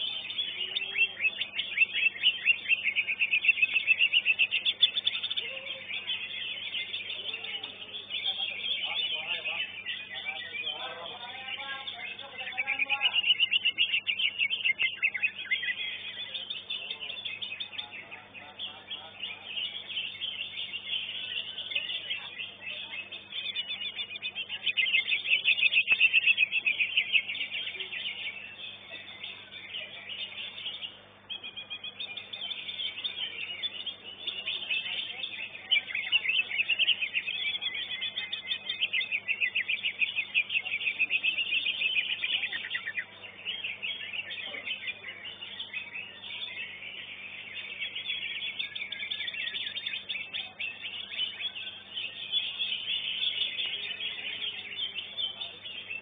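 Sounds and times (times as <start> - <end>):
bird singing chattering song: 0.0 - 56.0.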